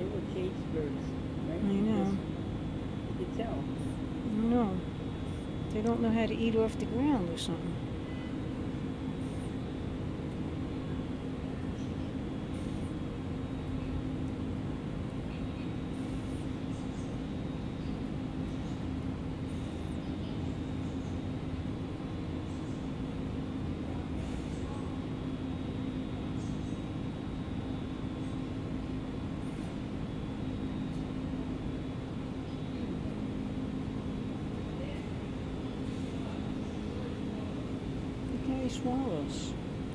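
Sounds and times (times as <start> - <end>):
steady machine hum: 0.0 - 39.9.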